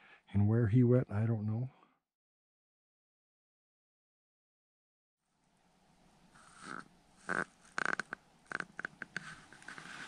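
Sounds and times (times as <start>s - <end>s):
person breathing or sniffing: 9.2s - 10.0s.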